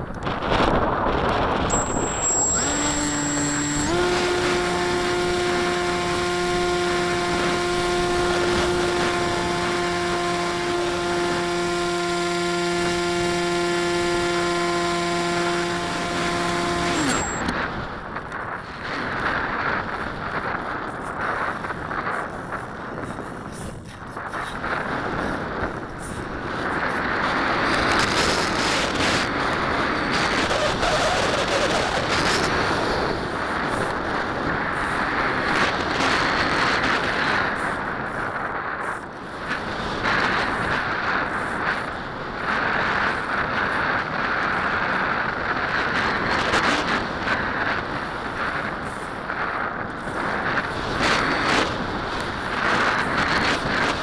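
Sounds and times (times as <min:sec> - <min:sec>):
wind rushing over microphone: 0:00.0 - 0:54.0
electric motor propeller whine: 0:00.2 - 0:23.6, 0:24.2 - 0:54.0.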